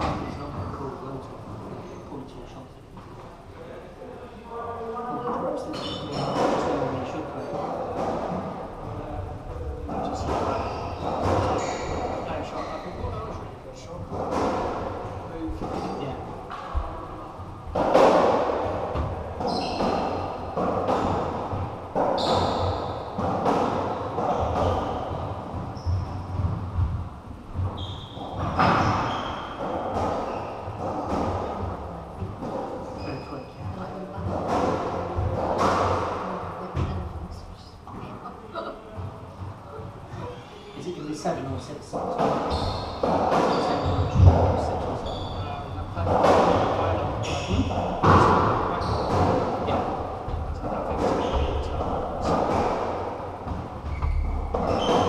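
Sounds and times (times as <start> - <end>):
squash ball hits echoing: 5.8 - 37.0, 41.9 - 55.0.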